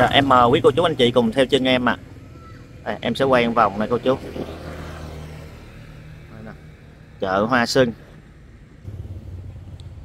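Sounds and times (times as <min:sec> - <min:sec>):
motorbike engine passing: 0:00.0 - 0:10.0.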